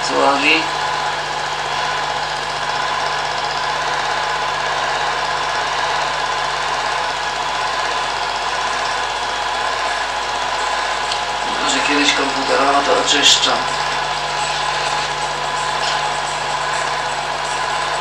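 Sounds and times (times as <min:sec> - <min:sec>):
film projector whirring: 0:00.0 - 0:18.0.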